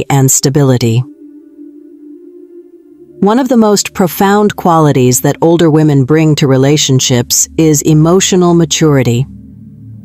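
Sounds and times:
held low chord music: 0.7 - 10.0.

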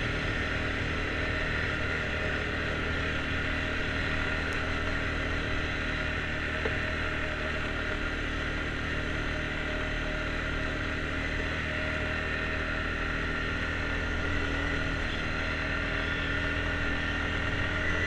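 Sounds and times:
road and wind noise: 0.0 - 18.0
vehicle engine running: 0.0 - 18.0.

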